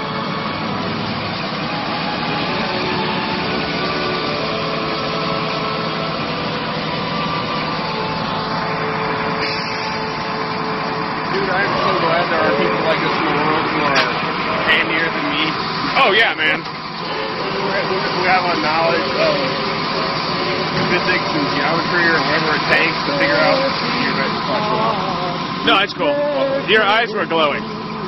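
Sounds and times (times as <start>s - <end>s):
heavy vehicle engine running: 0.0s - 28.0s
indistinct voices: 0.0s - 28.0s.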